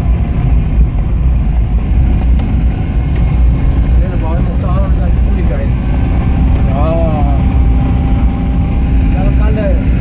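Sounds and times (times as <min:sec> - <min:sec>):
vehicle rumble: 0:00.0 - 0:10.0
wind noise on microphone: 0:00.0 - 0:10.0.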